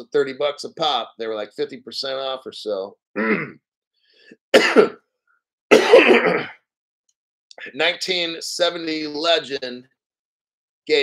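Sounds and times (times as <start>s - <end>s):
man coughing: 3.2s - 3.6s, 4.5s - 5.0s, 5.7s - 6.6s.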